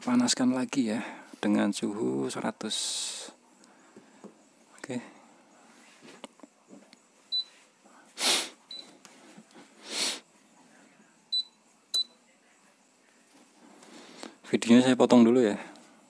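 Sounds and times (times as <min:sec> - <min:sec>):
short hissing bursts: 0:08.1 - 0:08.6, 0:09.7 - 0:10.3
high beeps: 0:11.3 - 0:12.2.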